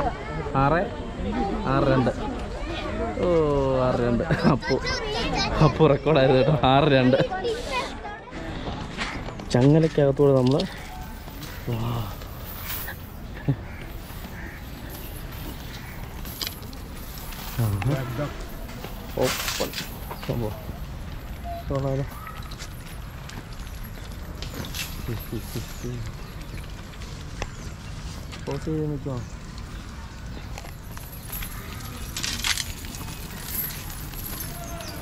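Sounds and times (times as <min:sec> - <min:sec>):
metal chains clinking and jangling: 0:10.7 - 0:26.7, 0:30.6 - 0:35.0.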